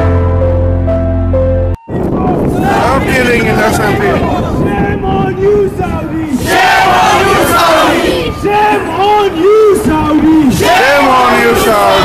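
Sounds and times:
crowd shouting slogans: 0:02.5 - 0:04.9, 0:05.7 - 0:12.0.

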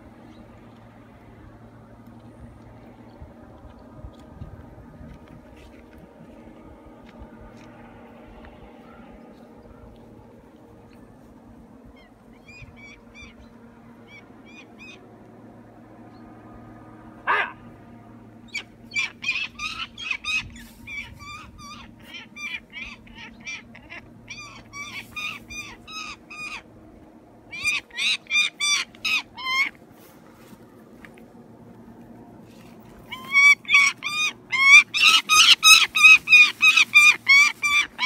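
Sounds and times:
bird of prey calling: 0:11.9 - 0:15.0, 0:18.4 - 0:26.7, 0:27.5 - 0:29.8, 0:33.0 - 0:38.0.

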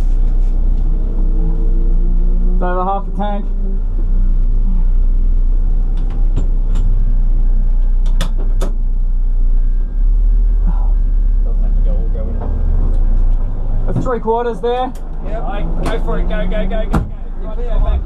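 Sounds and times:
car engine idling: 0:00.0 - 0:18.0.

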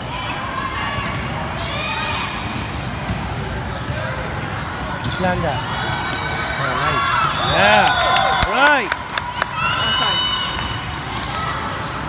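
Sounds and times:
spectators' voices: 0:00.0 - 0:12.0
sneaker squeaking on floor: 0:03.7 - 0:05.4.

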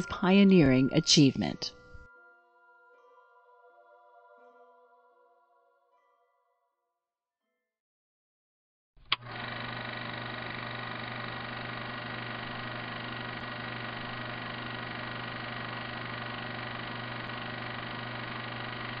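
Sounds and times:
click: 0:09.0 - 0:09.3.

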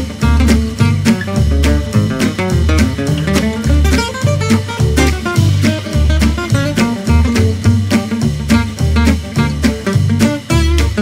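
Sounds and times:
jazz guitar and drums: 0:00.0 - 0:11.0.

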